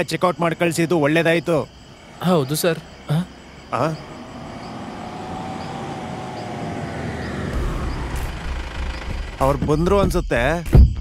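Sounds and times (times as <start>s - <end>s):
car engine and tyre noise: 1.8s - 10.5s
deep rumble: 2.9s - 10.6s.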